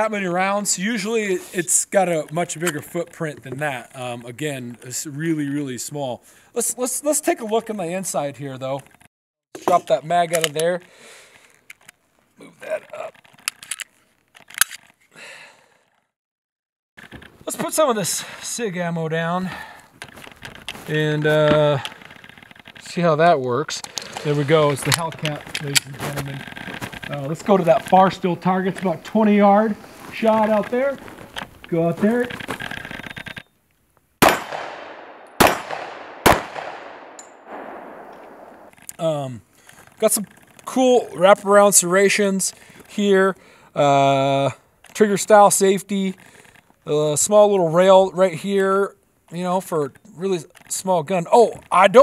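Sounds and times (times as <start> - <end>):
pistol slide scraping: 13.3 - 15.0
pistol metallic clicks: 34.2 - 38.9.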